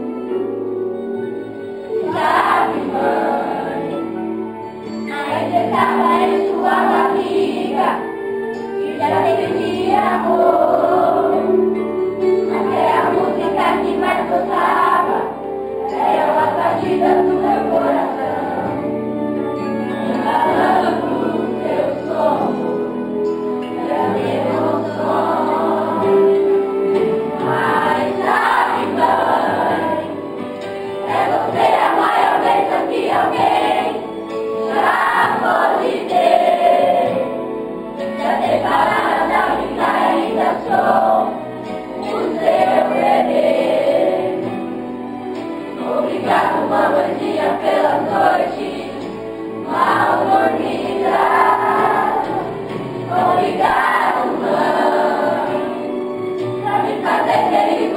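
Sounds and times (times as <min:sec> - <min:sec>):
instrumental accompaniment: 0:00.0 - 0:57.9
children singing: 0:01.9 - 0:19.0, 0:20.0 - 0:44.8, 0:45.4 - 0:57.9.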